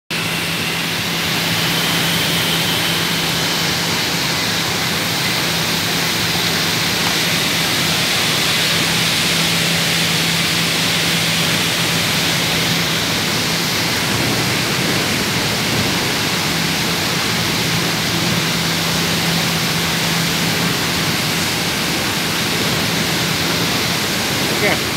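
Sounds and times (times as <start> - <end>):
molten iron rushing: 0.2 - 24.9.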